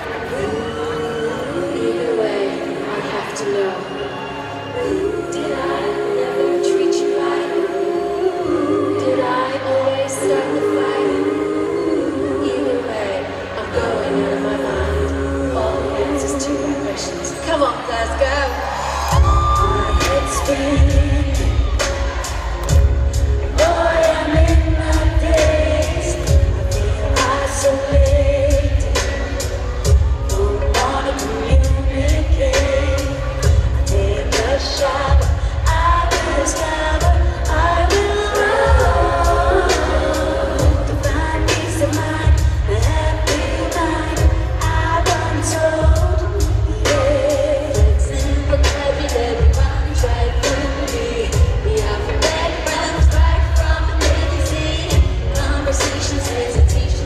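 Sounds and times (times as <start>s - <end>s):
pop vocal group singing: 0.0s - 57.0s
bass: 4.7s - 57.0s
band with heavy drum beat: 19.1s - 57.0s.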